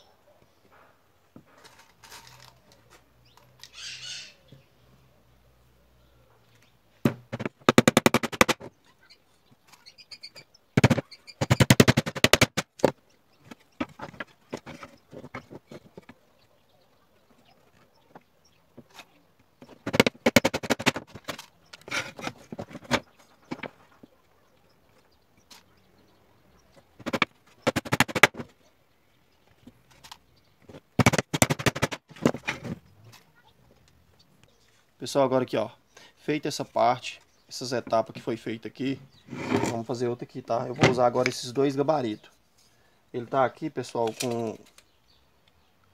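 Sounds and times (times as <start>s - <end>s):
hammer driving nails into wood: 7.0s - 8.7s, 10.8s - 13.0s, 19.6s - 22.3s, 27.0s - 28.4s, 31.0s - 32.3s.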